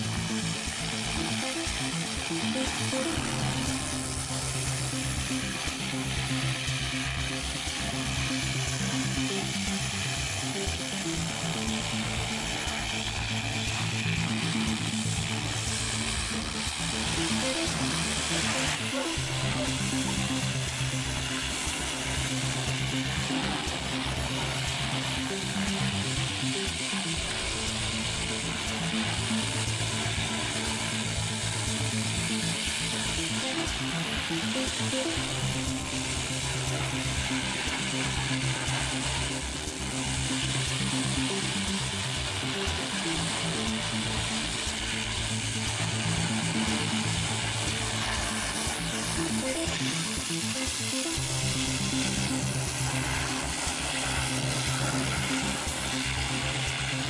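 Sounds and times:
high-pressure water jet hissing: 0:00.0 - 0:57.0
music with slow bass line: 0:00.0 - 0:57.0.

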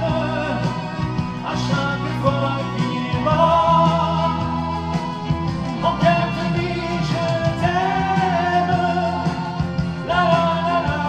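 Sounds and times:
man singing into a microphone: 0:00.0 - 0:05.0, 0:05.8 - 0:11.0
recorded backing music: 0:00.0 - 0:11.0.

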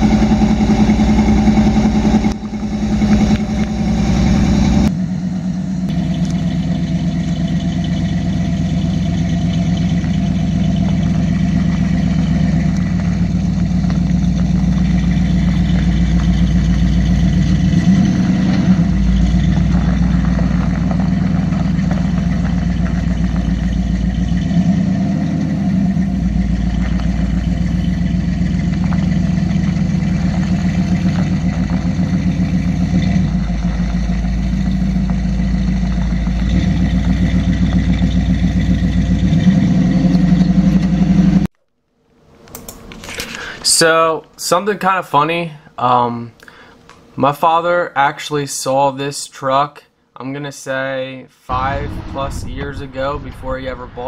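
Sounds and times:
pickup engine idling: 0:00.0 - 0:41.5.

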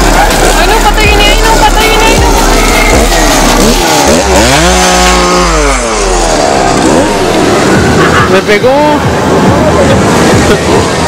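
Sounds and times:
chainsaw engine revving: 0:00.0 - 0:08.3.

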